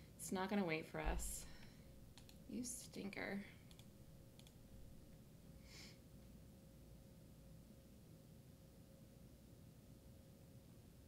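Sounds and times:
soft hiss: 1.0s - 8.8s
computer mouse click: 2.1s - 2.4s, 3.6s - 4.6s.

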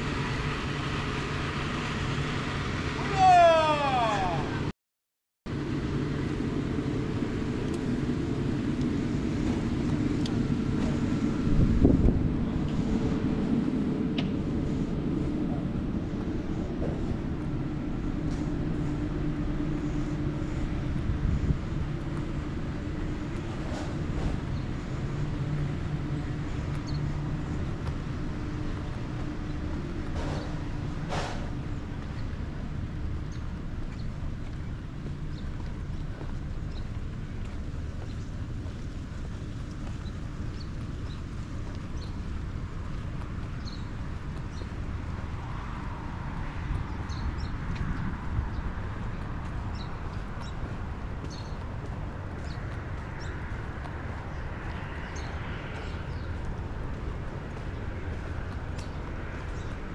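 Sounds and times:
low outdoor rumble: 0.0s - 4.7s, 5.5s - 59.9s.

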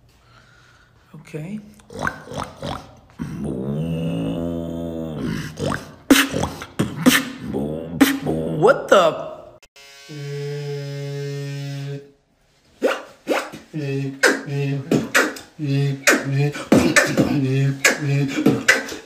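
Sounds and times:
beatboxing: 1.8s - 8.8s, 12.8s - 19.0s.

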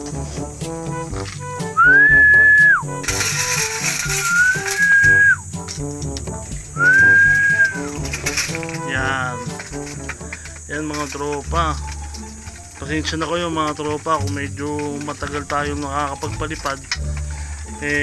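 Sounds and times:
background music: 0.0s - 18.0s
long steady whistles: 0.6s - 3.0s, 3.8s - 5.6s, 6.6s - 13.5s.

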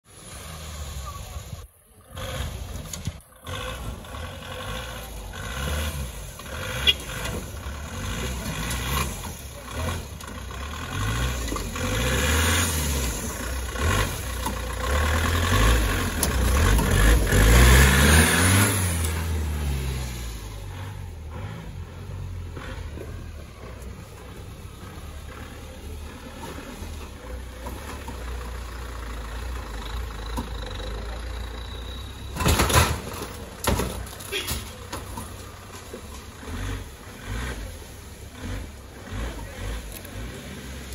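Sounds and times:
off-road vehicle engine revving: 0.0s - 40.9s.

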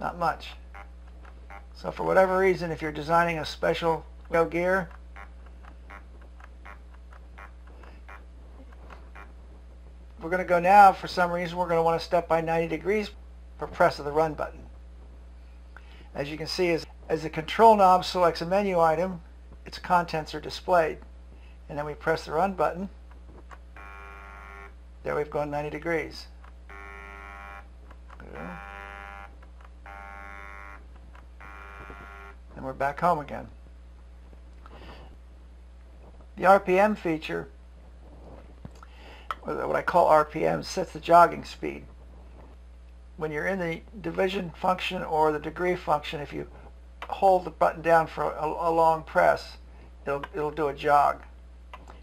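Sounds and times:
faint motor chirps: 23.7s - 24.8s, 26.4s - 32.4s
stepper motor humming: 26.4s - 32.4s
stepper motor whining: 31.4s - 32.4s.

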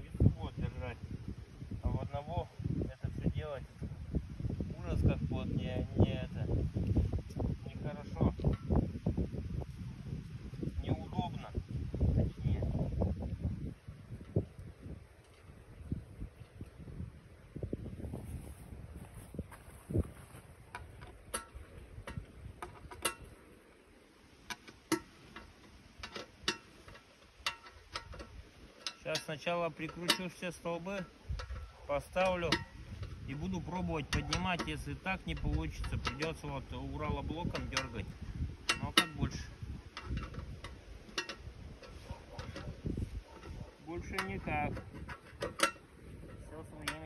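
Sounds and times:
wind buffeting microphone: 0.0s - 47.0s
light clicks and knocks on log and metal: 8.3s - 8.9s, 20.6s - 47.0s.

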